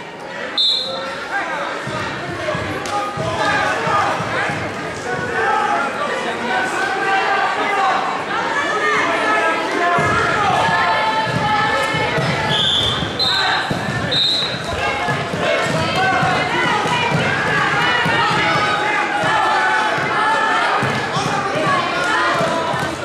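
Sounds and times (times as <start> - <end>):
crowd voices calling out: 0.0 - 23.0.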